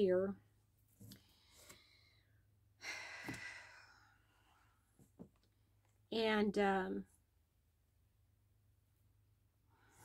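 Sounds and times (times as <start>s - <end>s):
woman sighing: 2.8s - 4.1s.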